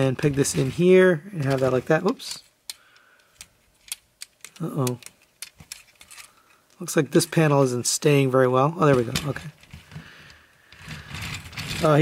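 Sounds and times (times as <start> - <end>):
toy truck wheels rolling on table: 10.7 - 12.0.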